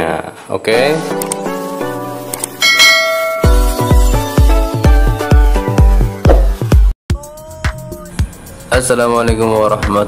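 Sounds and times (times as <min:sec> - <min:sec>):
electronic music with heavy bass: 0:00.8 - 0:10.0
bright bell ding: 0:02.6 - 0:03.9.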